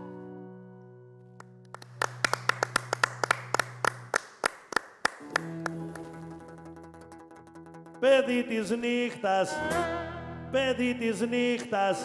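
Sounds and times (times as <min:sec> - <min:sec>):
sharp hand claps: 0:01.4 - 0:08.0
folk band of lyra and lutes: 0:05.3 - 0:08.1.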